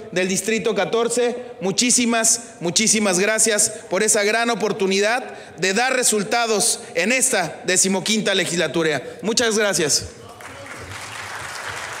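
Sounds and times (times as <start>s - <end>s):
audience applauding: 10.2s - 12.0s.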